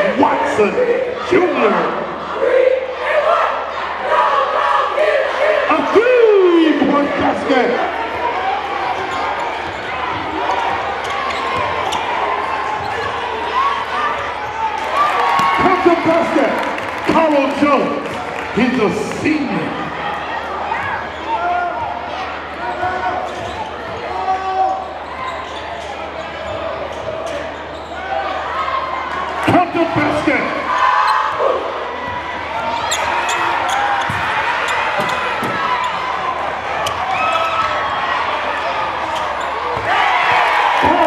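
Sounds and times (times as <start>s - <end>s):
crowd chatter and shouts: 0.0s - 41.0s.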